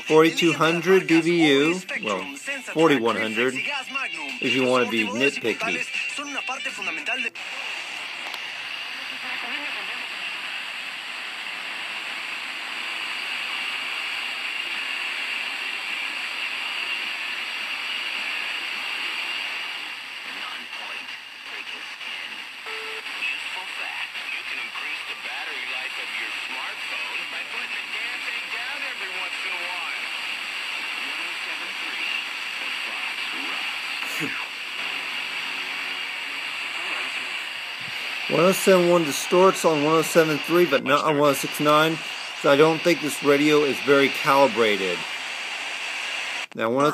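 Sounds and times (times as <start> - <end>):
distorted radio programme: 0.0 - 46.9
radio static hiss: 0.0 - 46.9.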